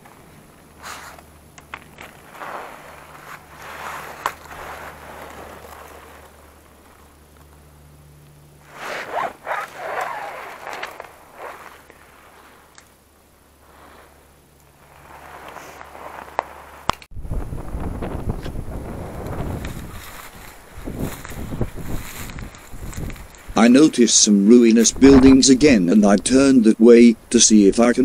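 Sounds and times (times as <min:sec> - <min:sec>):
footsteps scraping over rubble: 0:00.0 - 0:07.6, 0:19.0 - 0:23.6
steps rustling through dry brush: 0:00.0 - 0:17.1, 0:17.9 - 0:23.9
wind rumbling on microphone: 0:08.6 - 0:24.0, 0:24.8 - 0:26.4.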